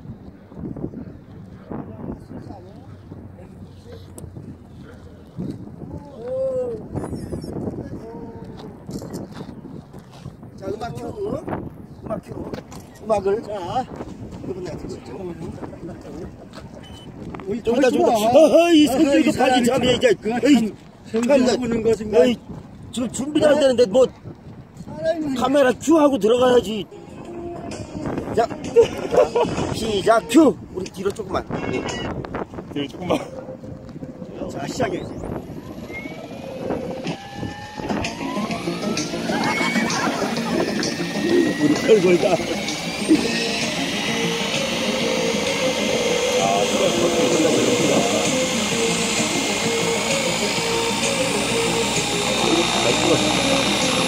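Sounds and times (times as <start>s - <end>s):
wind on microphone: 0.0s - 54.0s
model helicopter rotor whine: 34.7s - 54.0s.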